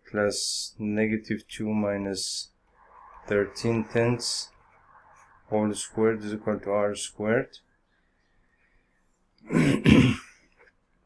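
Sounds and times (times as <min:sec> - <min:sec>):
man coughing: 0:09.4 - 0:10.4.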